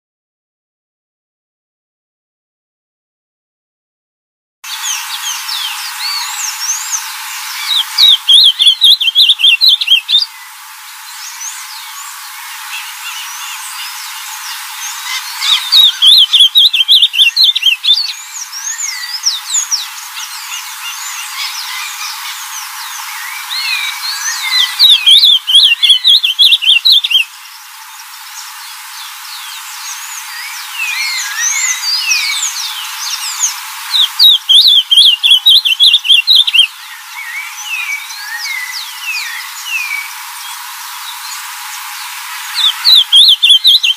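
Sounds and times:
bird singing warbled phrases: 4.7 - 41.5, 42.4 - 43.9
birds chirping in background: 4.7 - 43.9.

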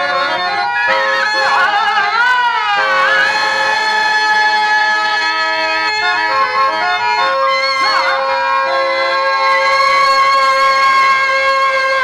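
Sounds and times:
harmonium chord: 0.0 - 12.0
person singing: 1.2 - 5.5.

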